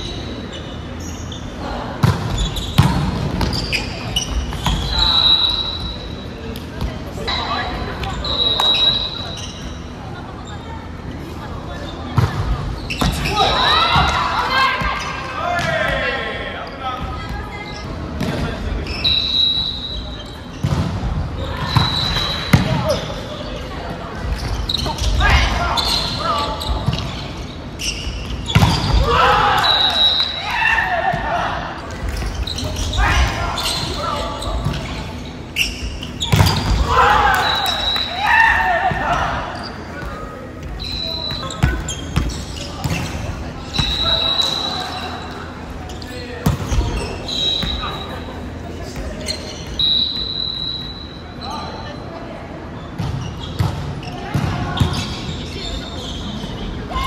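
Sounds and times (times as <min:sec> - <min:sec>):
shoes squeaking on court: 0:00.0 - 0:16.0, 0:16.6 - 0:29.1, 0:31.8 - 0:57.0
players calling out: 0:24.7 - 0:52.0.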